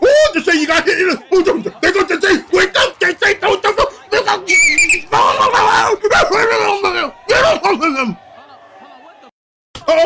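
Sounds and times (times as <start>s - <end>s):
man exclaiming and shouting: 0.0s - 8.2s, 9.8s - 10.0s
shrill wavering squeal: 4.5s - 5.2s.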